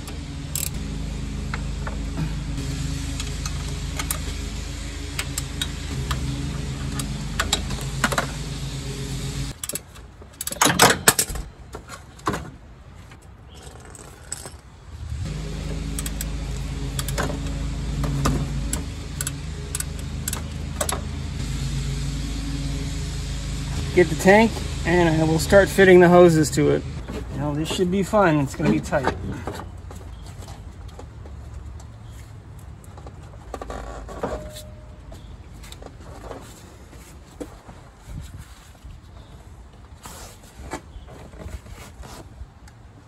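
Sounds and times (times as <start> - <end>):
steady low hum: 0.0 - 9.6, 14.8 - 29.4
ratchet and wrench clinking: 0.5 - 0.8, 18.7 - 21.0.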